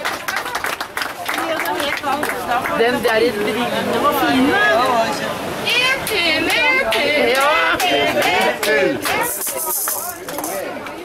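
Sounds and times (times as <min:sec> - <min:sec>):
people talking: 0:00.0 - 0:11.0.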